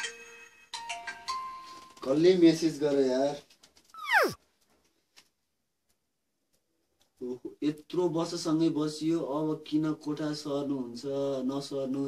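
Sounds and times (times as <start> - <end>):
comic descending slide tone: 4.0 - 4.4.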